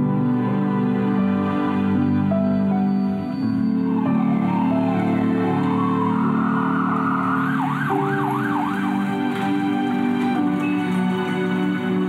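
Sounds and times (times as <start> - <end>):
soft background music: 0.0 - 12.0
ambulance siren yelping: 3.5 - 12.0.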